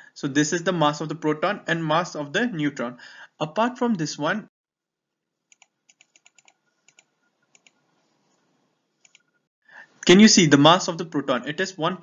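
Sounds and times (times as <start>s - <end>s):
faint computer clicks: 9.0s - 9.3s.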